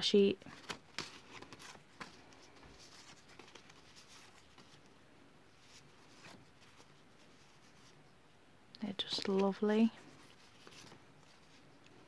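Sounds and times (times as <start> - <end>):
paper cards rustling: 0.4 - 5.0, 5.6 - 8.0, 9.0 - 12.0.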